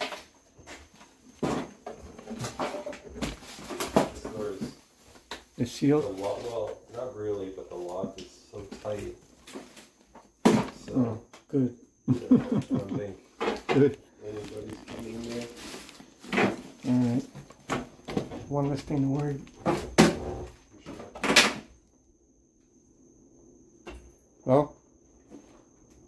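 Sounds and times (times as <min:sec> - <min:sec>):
people talking: 0:04.0 - 0:04.8, 0:05.6 - 0:09.2, 0:10.6 - 0:15.8, 0:16.8 - 0:17.3, 0:18.4 - 0:19.5, 0:20.8 - 0:21.2.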